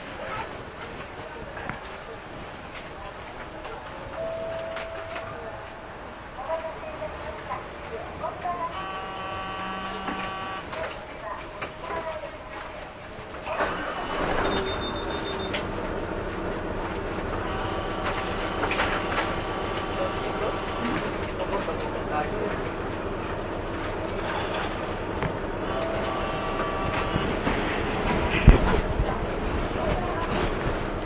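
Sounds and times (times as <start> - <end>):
bus engine and road noise: 0.0 - 31.0.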